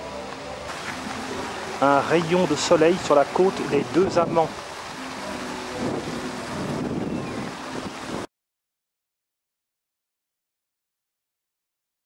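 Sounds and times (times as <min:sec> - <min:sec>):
water: 0:00.0 - 0:08.3
wind on microphone: 0:03.3 - 0:08.3.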